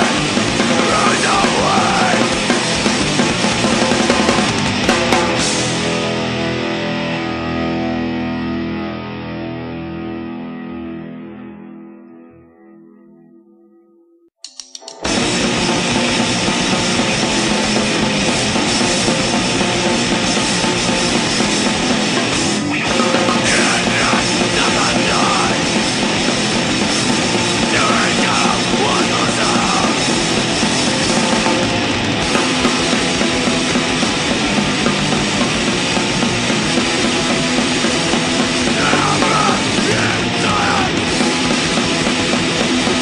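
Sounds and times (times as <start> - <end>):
hardcore punk band playing: 0.0 - 11.3, 14.4 - 43.0.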